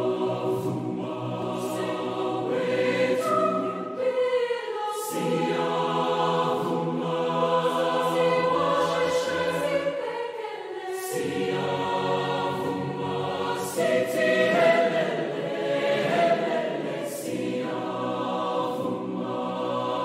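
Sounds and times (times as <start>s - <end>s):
choir singing sustained chords: 0.0s - 20.0s.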